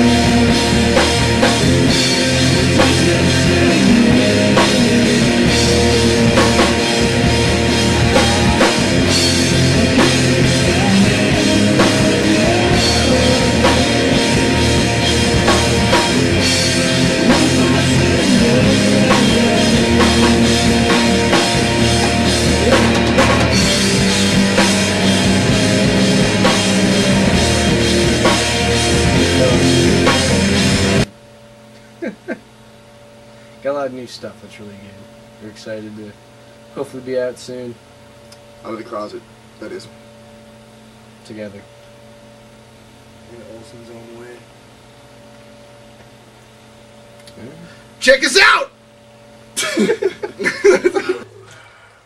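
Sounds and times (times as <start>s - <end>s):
electric guitars: 0.0s - 31.1s
heavy rock band playing: 0.0s - 31.1s
drum kit with cymbal hits: 0.0s - 31.2s
low room hum: 0.0s - 52.0s.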